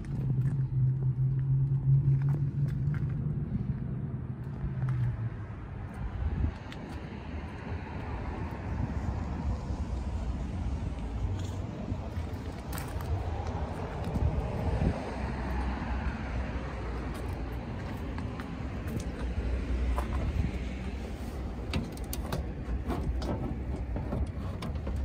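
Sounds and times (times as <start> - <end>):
motor vehicle rumble: 0.0 - 25.0.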